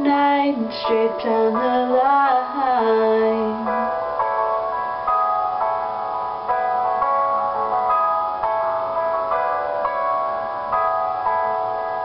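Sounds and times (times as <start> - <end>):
piano sustained chords: 0.0 - 12.0.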